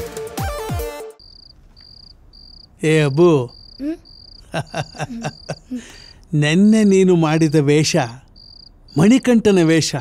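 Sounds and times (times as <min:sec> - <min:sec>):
cricket chirping: 0:01.2 - 0:10.0.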